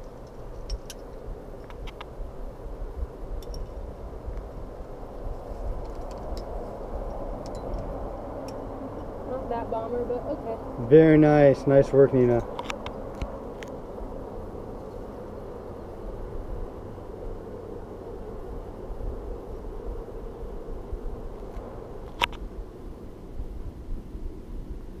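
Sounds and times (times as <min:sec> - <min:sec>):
low outdoor rumble: 0:00.0 - 0:25.0.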